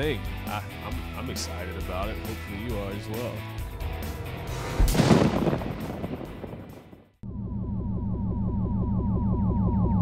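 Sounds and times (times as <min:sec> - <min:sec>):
loud ringing hit: 0:03.6 - 0:07.0.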